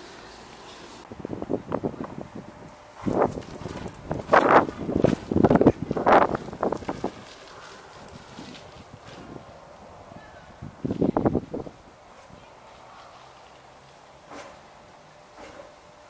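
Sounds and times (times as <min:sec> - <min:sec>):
footsteps: 0:02.0 - 0:09.7
mountain bike knocking and scuffing: 0:03.0 - 0:09.5.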